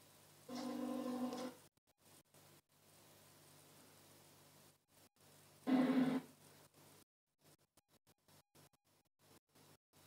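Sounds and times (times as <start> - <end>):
held pitched tone from television: 0.4 - 10.0.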